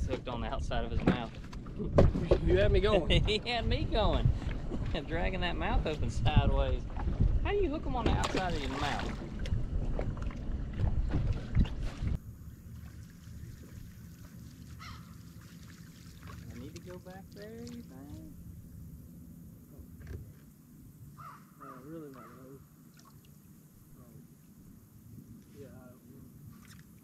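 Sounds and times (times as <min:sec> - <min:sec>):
wind buffeting microphone: 0:00.0 - 0:12.3
boat and water noise: 0:00.0 - 0:27.0
crows cawing: 0:14.8 - 0:15.2, 0:21.2 - 0:22.6.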